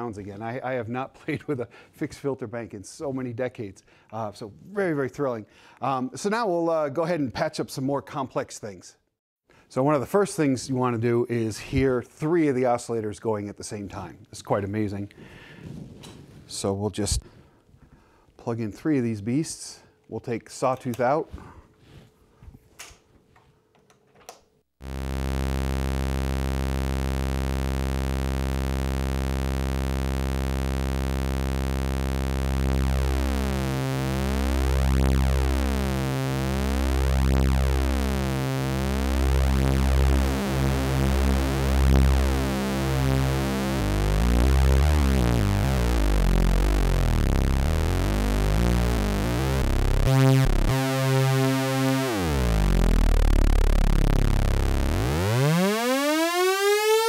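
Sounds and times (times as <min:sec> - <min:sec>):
buzzing synthesizer drone: 0:24.8 - 0:57.0.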